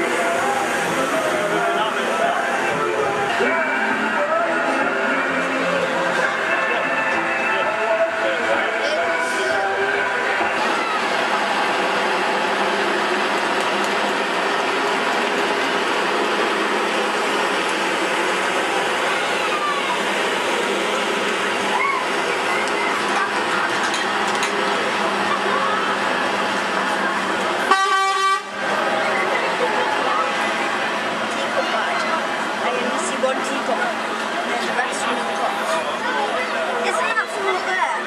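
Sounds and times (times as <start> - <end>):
lorry engines droning: 0.0 - 38.0
vehicle horn toot: 27.6 - 28.6.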